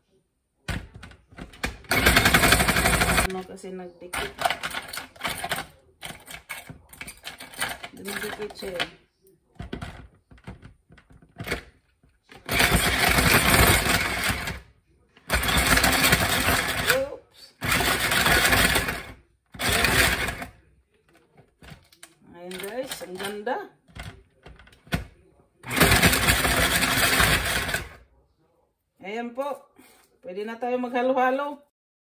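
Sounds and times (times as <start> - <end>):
ice clattering in crusher: 0.7 - 3.4, 4.2 - 8.9, 12.3 - 20.6, 24.9 - 28.0.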